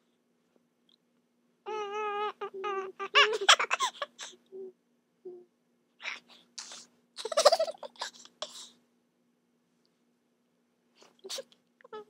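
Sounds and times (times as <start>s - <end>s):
person strained warbling vocal: 1.7s - 4.7s.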